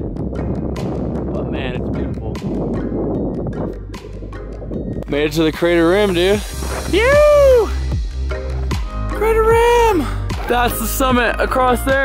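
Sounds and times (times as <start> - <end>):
music with percussive beat: 0.0 - 12.0.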